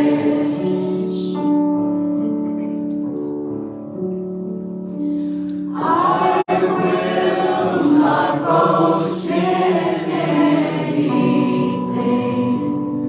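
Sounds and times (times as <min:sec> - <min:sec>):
worship band singers: 0:00.0 - 0:01.4, 0:05.7 - 0:13.0
electric keyboard chords: 0:00.0 - 0:13.0.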